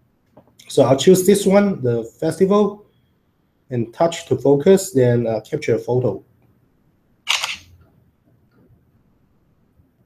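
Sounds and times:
camera shutter click: 7.3 - 7.8.

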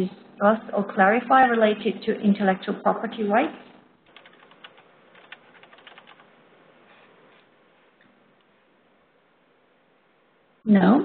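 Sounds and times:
faint keyboard typing: 4.1 - 6.3.

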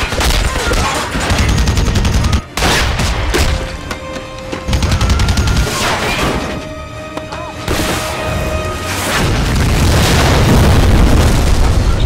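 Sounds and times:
music: 0.0 - 12.0
deep rumbling explosion: 9.2 - 12.0.

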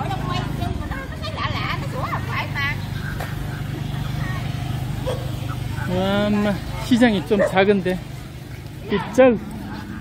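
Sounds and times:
people talking: 0.0 - 10.0
dog barking and yelping: 5.0 - 5.9, 6.7 - 7.7.

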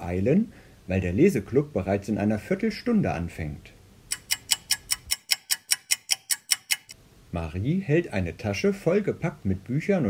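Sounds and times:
rapid light ticking: 4.1 - 7.0.

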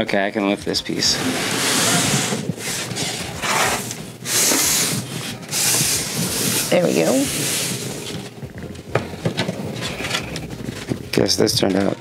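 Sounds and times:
wooden panel scraping across table: 1.0 - 8.4.

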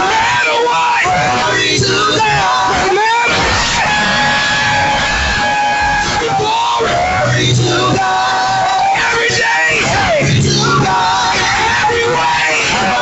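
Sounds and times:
shouting voices: 0.0 - 13.0
singers holding long notes: 0.0 - 13.0.

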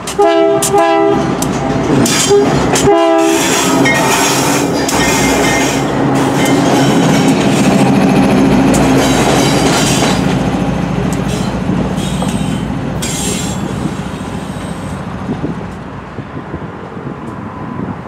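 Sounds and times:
train wheels clattering on rails: 0.0 - 15.9
diesel locomotive engine drone: 0.0 - 18.0
train horn blast: 0.1 - 1.4, 2.2 - 4.6.

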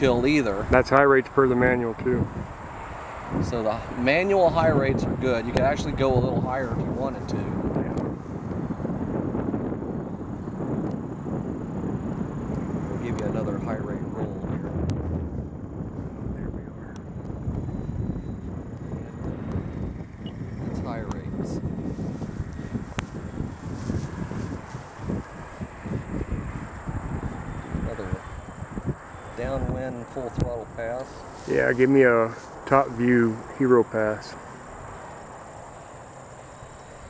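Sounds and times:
voices: 0.0 - 2.4, 3.3 - 8.1, 12.8 - 14.9, 16.2 - 17.2, 20.3 - 21.6, 23.8 - 36.0
wind rumbling on microphone: 0.0 - 37.0
distant model plane motors droning: 17.4 - 31.5, 32.1 - 37.0.

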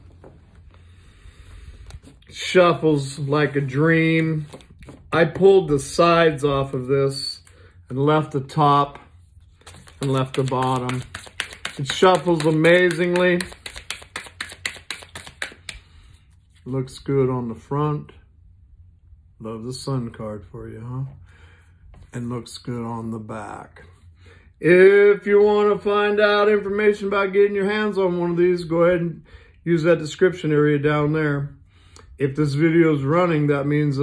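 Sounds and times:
low room hum: 0.0 - 34.0
tarot cards being handled: 4.4 - 5.2, 8.9 - 16.7
cards clicking against table: 9.6 - 15.8.

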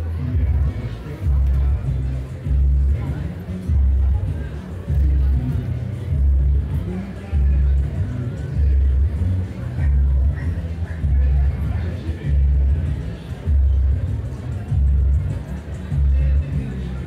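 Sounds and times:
music with deep bass beat: 0.0 - 17.0.

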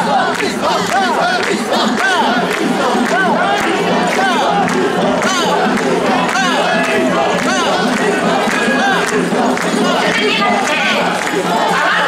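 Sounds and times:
crowd chanting in unison: 0.0 - 12.0
crowd din: 0.0 - 12.0.

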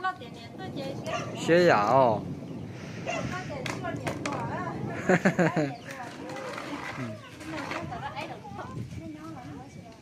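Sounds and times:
women talking quietly: 3.0 - 10.0.

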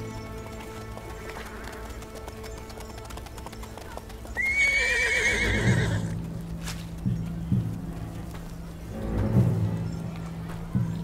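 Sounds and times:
background music: 0.0 - 11.0
hooves thudding on ground: 0.0 - 11.0
horse neighing: 4.4 - 6.2.

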